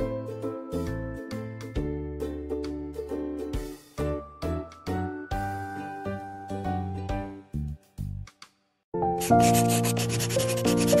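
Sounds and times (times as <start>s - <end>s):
soft chord music: 0.0s - 7.6s, 9.0s - 11.0s
pen scratching on paper: 9.2s - 11.0s.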